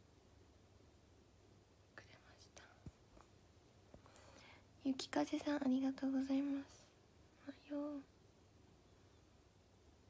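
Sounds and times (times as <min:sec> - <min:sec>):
faint whispers: 0:02.0 - 0:03.0
young woman speaking: 0:04.8 - 0:08.1.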